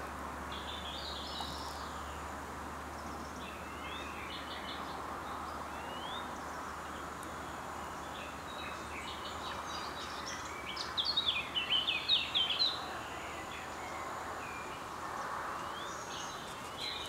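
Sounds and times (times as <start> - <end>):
outdoor background hiss: 0.0 - 17.0.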